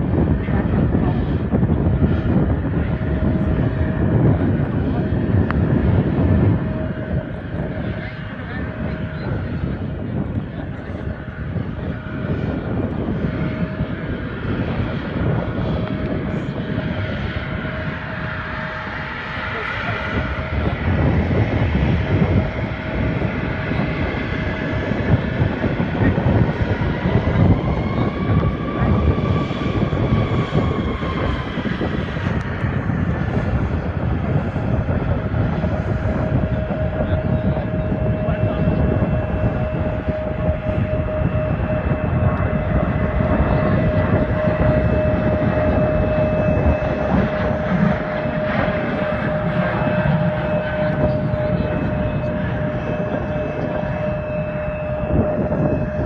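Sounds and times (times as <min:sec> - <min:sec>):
jet engines rumbling and whining: 0:00.0 - 0:56.0.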